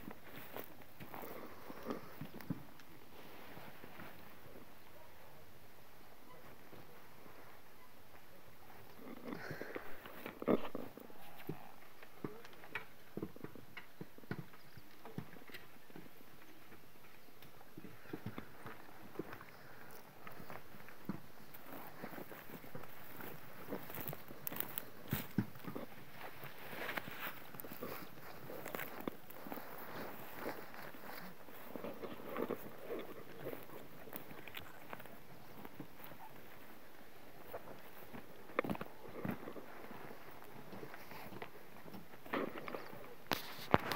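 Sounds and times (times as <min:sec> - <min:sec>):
footsteps in grass: 0:00.0 - 0:04.9, 0:17.8 - 0:43.9
horse hooves clip-clopping: 0:06.1 - 0:43.9.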